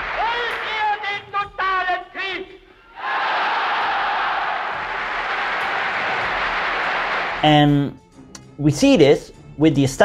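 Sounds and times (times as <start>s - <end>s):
crowd shouting and cheering: 0.0s - 2.3s, 2.9s - 7.6s.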